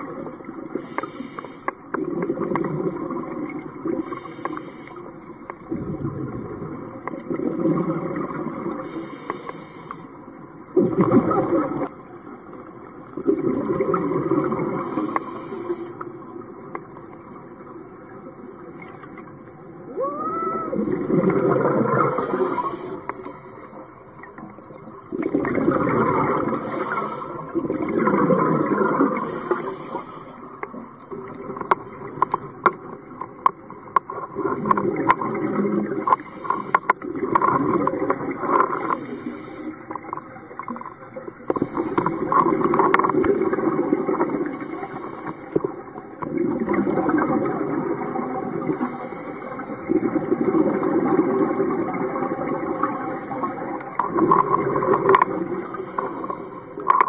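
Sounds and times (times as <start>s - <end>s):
exhale bubbling rumble: 5.7s - 8.8s, 19.9s - 22.2s, 25.1s - 29.2s.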